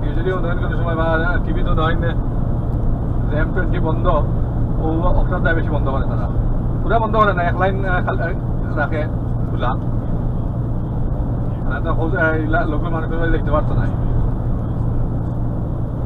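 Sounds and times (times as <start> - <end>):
lorry engine and tyres drone: 0.0 - 16.0.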